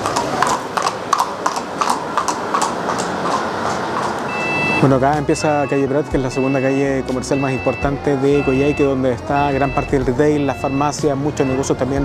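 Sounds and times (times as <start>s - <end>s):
horse hooves on asphalt: 0.0s - 12.0s
steady background noise: 0.0s - 12.0s.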